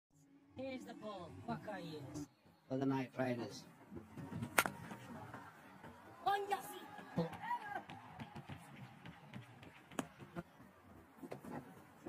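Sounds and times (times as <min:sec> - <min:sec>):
faint stadium background: 0:00.1 - 0:12.0.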